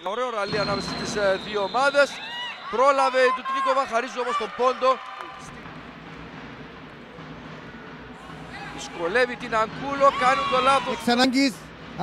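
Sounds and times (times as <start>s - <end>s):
sports hall background noise: 0.0s - 12.0s.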